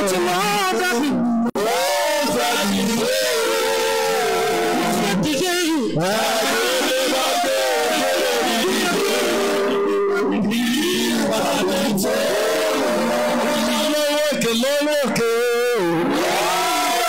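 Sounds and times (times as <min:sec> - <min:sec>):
congregation singing: 0:06.0 - 0:09.8, 0:10.5 - 0:14.0.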